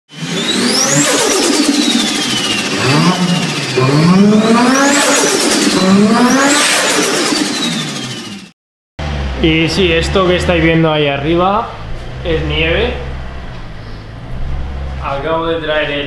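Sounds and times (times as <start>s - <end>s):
high whine sweeping: 0.1s - 8.4s, 9.0s - 16.0s
car engine revving: 0.1s - 16.0s.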